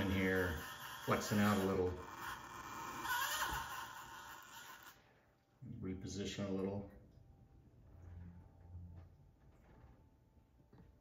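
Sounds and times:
small electric motor whining: 0.0s - 5.0s.

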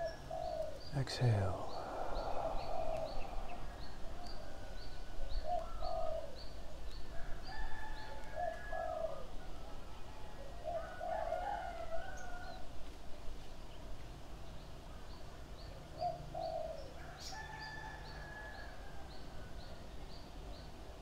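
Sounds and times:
bird cooing: 0.0s - 6.9s, 7.6s - 9.5s, 10.4s - 12.6s, 15.7s - 18.8s.

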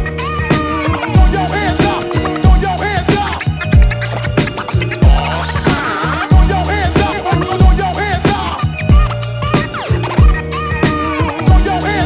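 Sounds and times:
hip-hop beat: 0.0s - 12.0s
turntable record scratching: 0.0s - 12.0s.

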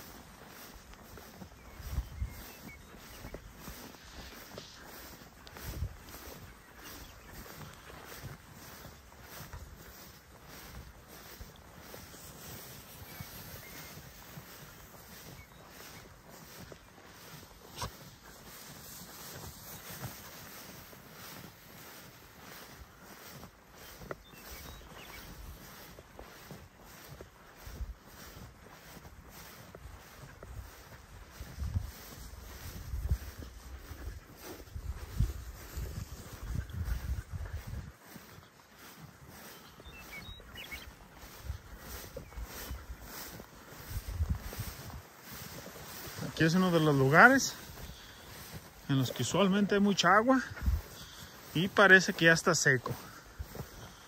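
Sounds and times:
footsteps swishing through grass: 0.0s - 54.0s
wind rumble on microphone: 1.0s - 10.6s, 27.6s - 38.4s, 39.4s - 46.0s, 50.5s - 51.0s.

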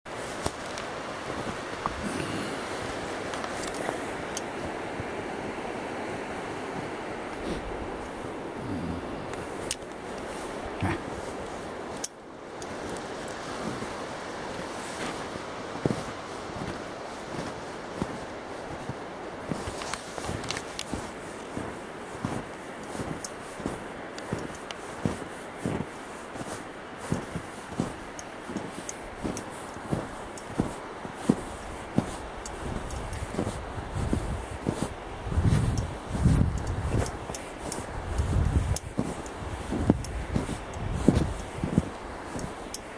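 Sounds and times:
creek water running over rocks: 0.1s - 42.9s
footsteps in snow: 0.1s - 42.9s.

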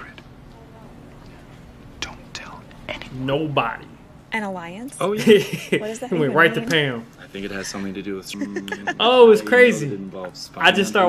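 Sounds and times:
person whispering: 8.4s - 9.0s.

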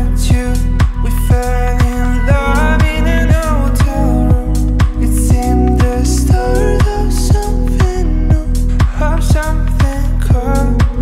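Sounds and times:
kick drum beat: 0.0s - 11.0s
sustained bass: 0.0s - 11.0s.

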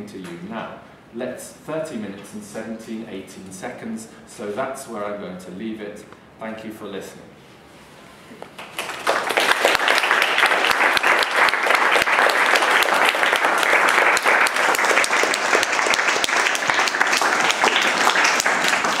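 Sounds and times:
audience applauding: 8.6s - 19.0s.

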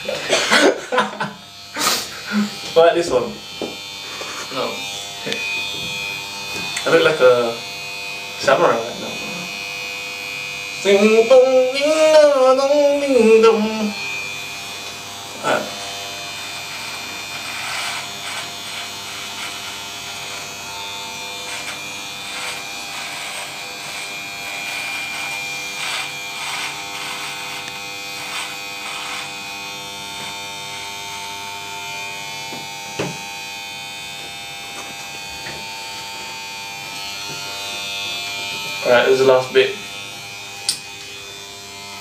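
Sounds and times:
electric beard trimmer buzzing: 0.0s - 42.0s.

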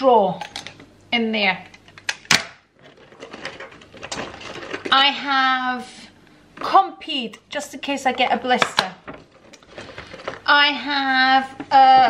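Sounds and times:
hands rummaging through paper bag: 9.1s - 10.5s.

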